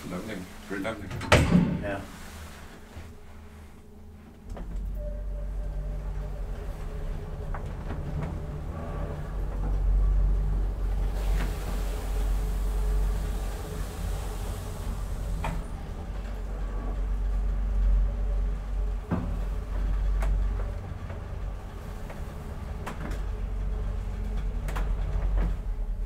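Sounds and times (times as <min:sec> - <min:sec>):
elevator pump hum: 0:00.0 - 0:26.0
hiss: 0:11.1 - 0:15.7.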